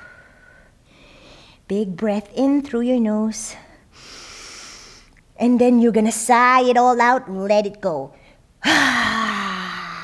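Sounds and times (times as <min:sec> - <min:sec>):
woman sighing: 0:08.6 - 0:10.0.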